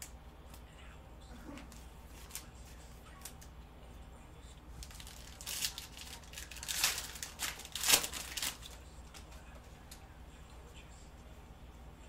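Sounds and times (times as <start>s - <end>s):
foil wrapper tearing and crinkling: 4.8s - 9.2s.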